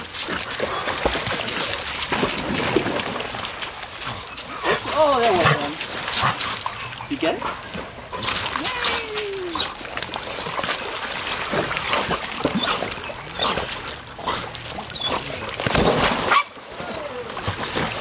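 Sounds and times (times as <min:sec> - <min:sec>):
water splashing: 0:00.0 - 0:18.0
dogs whining and yipping: 0:00.6 - 0:01.4, 0:08.2 - 0:17.4.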